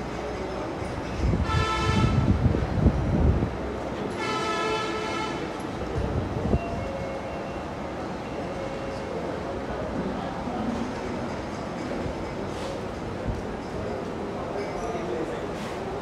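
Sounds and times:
long horn blasts: 0:01.4 - 0:02.4, 0:04.1 - 0:05.6.

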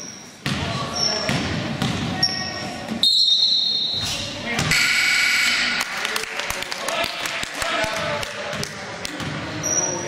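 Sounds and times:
voices in a gym: 0:00.0 - 0:10.0
referee's whistle blast: 0:04.7 - 0:05.7.

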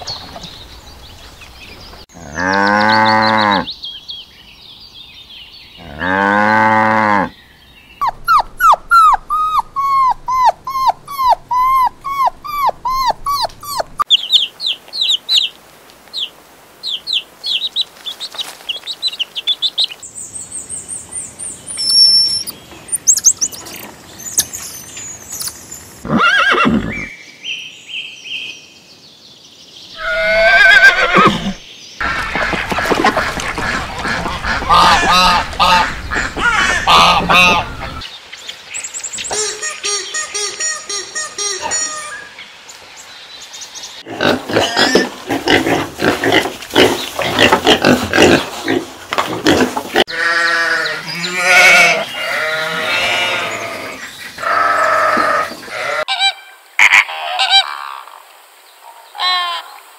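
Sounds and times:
rising and falling chirping calls: 0:07.9 - 0:27.1, 0:36.0 - 0:42.5
ducks calling in chorus: 0:32.0 - 0:38.0.

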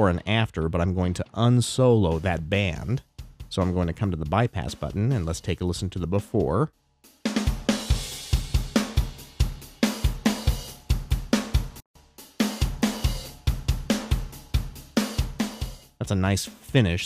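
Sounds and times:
drum kit playing a beat: 0:00.0 - 0:17.0.

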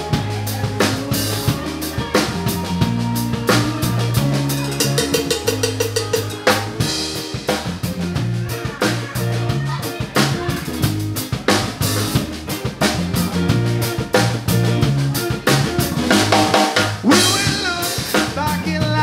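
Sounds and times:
drum kit kick and snare: 0:00.0 - 0:19.0
electric bass notes: 0:00.0 - 0:19.0
electric guitar: 0:00.0 - 0:19.0.

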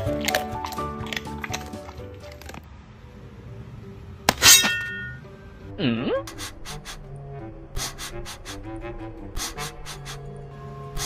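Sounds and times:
sharp metallic ding: 0:04.3 - 0:05.3.

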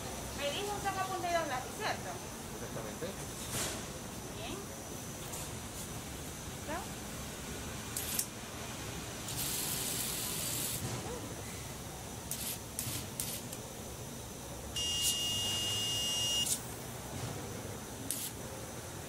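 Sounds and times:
sprayers hissing: 0:09.2 - 0:11.0
short spray puffs: 0:09.2 - 0:11.6, 0:12.3 - 0:13.6, 0:16.3 - 0:18.4
high electronic whine: 0:14.7 - 0:16.7.

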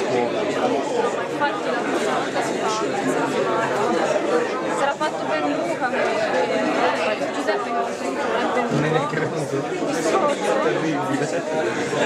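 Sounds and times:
overlapping voices chattering: 0:00.0 - 0:12.0.

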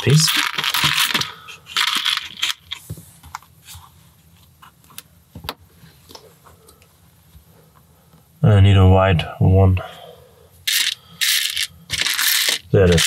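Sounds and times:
plastic pieces clattering: 0:00.0 - 0:02.8, 0:10.7 - 0:13.0.

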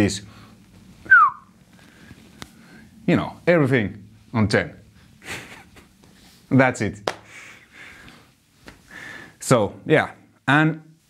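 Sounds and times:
whistle gliding down: 0:01.1 - 0:01.5.

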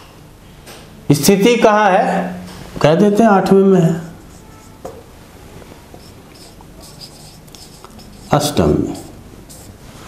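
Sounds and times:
marker writing on whiteboard: 0:04.2 - 0:05.1, 0:05.9 - 0:09.8.

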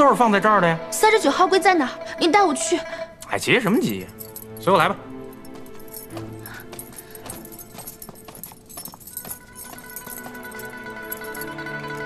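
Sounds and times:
soft background music: 0:00.0 - 0:12.0
footsteps on a hard floor: 0:05.4 - 0:11.4.

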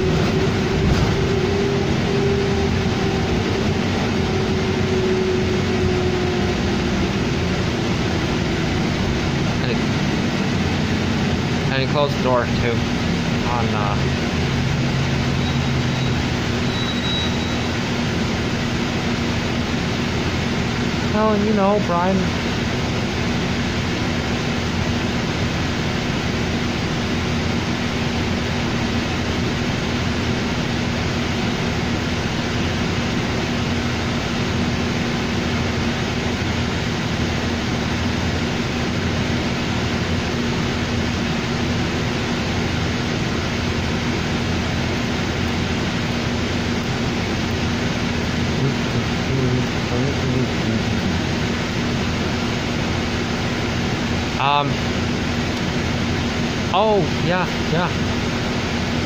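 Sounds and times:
bus engine and ventilation drone: 0:00.0 - 0:59.0.

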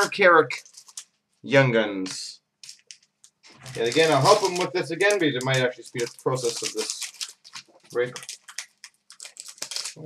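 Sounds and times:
cards being handled: 0:00.0 - 0:01.1, 0:02.1 - 0:10.0
plastic wrappers crinkling and tearing: 0:00.0 - 0:01.1, 0:02.1 - 0:10.0.

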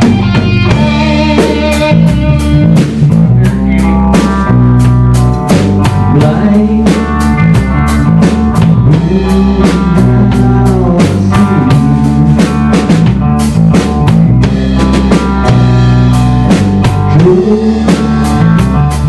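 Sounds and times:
drum kit beat: 0:00.0 - 0:19.0
electric bass: 0:00.0 - 0:19.0
electric guitar bending notes: 0:00.0 - 0:19.0.

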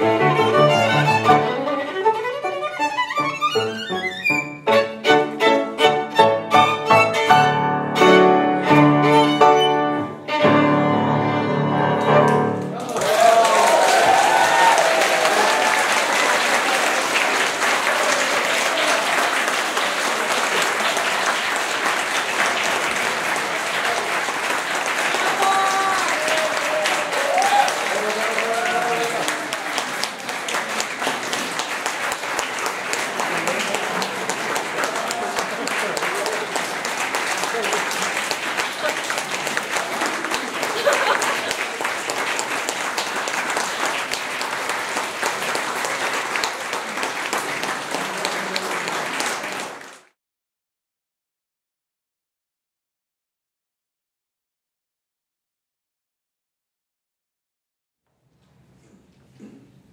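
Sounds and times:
audience applauding: 0:00.0 - 0:04.4, 0:12.0 - 0:50.2.

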